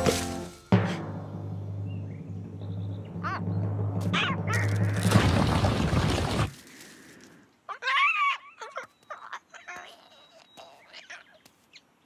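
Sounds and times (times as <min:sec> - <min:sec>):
rumbling crash sound effect: 0:00.9 - 0:06.5
cartoon bird crying: 0:07.7 - 0:11.3.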